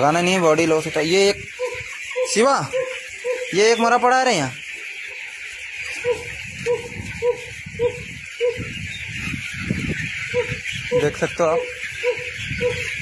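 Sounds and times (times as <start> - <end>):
chicks cheeping: 0.0 - 13.0.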